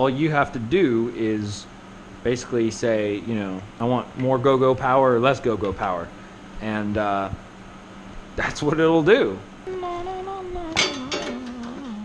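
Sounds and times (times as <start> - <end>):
man humming: 9.6 - 12.0.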